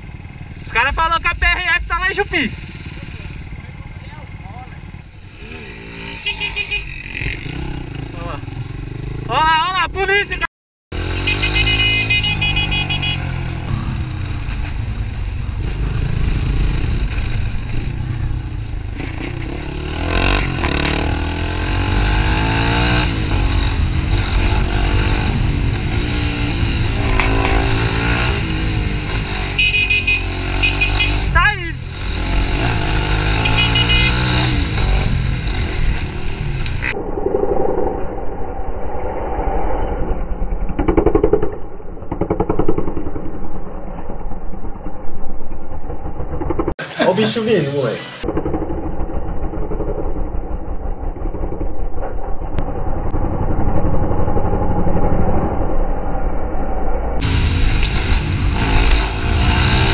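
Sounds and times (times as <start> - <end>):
motorcycle engine: 0.0 - 10.0, 10.9 - 38.1, 40.0 - 47.0, 47.9 - 59.9.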